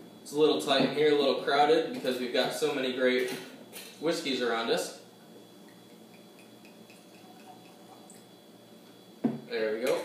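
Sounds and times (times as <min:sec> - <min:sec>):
liquid pouring into a glass: 0:05.6 - 0:08.4.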